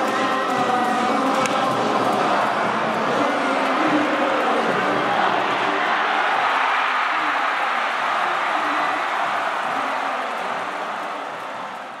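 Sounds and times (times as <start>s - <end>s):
stadium crowd singing: 0.0s - 12.0s.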